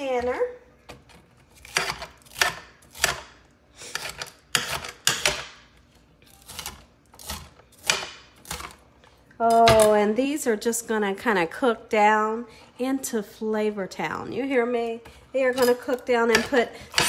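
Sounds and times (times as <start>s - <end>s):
knife chopping on glass board: 6.6s - 8.7s.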